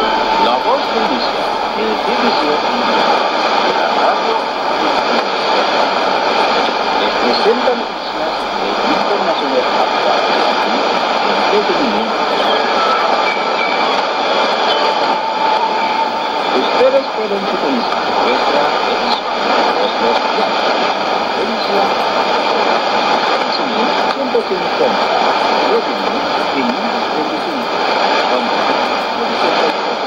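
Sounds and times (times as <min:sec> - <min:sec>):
faint radio speech: 0:00.0 - 0:30.0
radio static hiss: 0:00.0 - 0:30.0.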